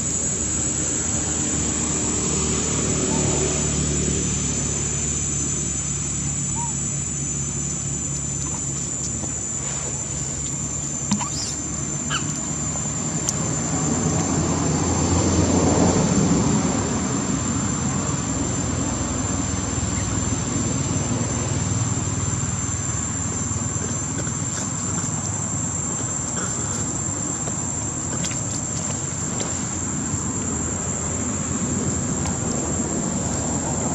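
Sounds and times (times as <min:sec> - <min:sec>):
high-pitched insect drone: 0:00.0 - 0:33.9
low rumbling background noise: 0:00.0 - 0:33.9.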